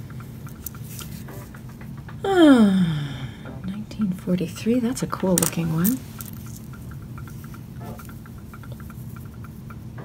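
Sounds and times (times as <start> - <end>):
steady low hum: 0.0 - 10.0
coins clicking: 5.3 - 6.8.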